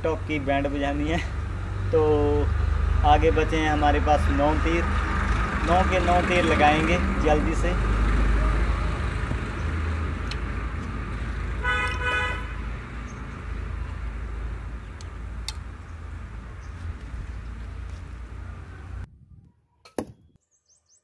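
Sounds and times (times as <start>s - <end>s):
outdoor rumble: 0.0s - 19.1s
vehicle horn tooting: 11.6s - 12.7s
arrow striking cardboard target: 19.8s - 20.2s.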